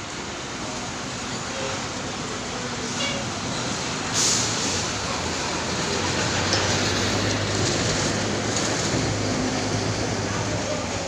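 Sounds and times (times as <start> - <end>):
bus diesel engine droning: 0.0 - 11.0
broad even hiss: 4.1 - 5.0.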